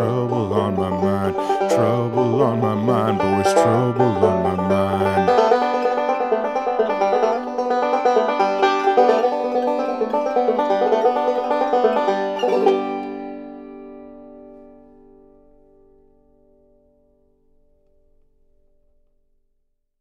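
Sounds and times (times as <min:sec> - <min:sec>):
banjo picking: 0:00.0 - 0:15.6.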